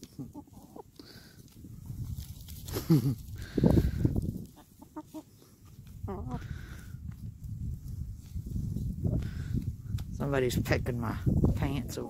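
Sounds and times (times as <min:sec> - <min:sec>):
hens clucking: 0:00.0 - 0:01.6, 0:03.4 - 0:06.6.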